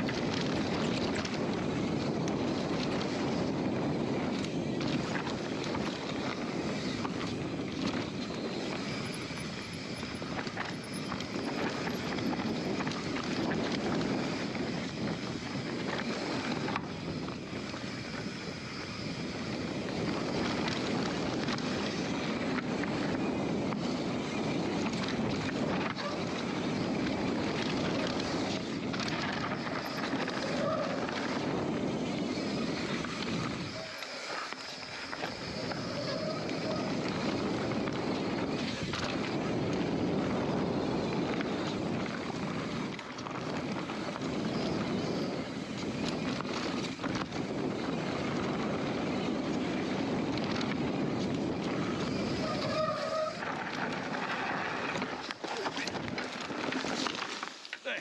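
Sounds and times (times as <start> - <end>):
bike rattling: 0.0 - 58.0
wind on microphone: 0.0 - 58.0
tyres rolling over dirt: 24.7 - 58.0.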